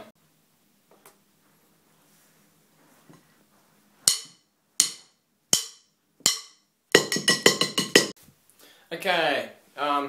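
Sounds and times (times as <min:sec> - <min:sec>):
rapid drum hits: 0:07.0 - 0:08.2.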